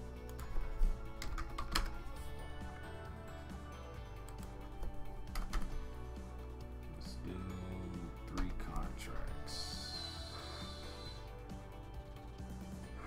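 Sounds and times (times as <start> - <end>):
background music: 0.0 - 13.0
keyboard typing: 0.1 - 2.3, 4.2 - 5.8, 8.2 - 8.9.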